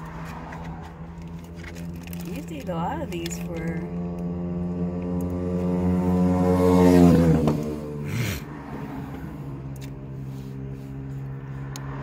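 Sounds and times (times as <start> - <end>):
car cabin hum: 0.0 - 12.0
plastic food packaging rustling: 1.1 - 2.6.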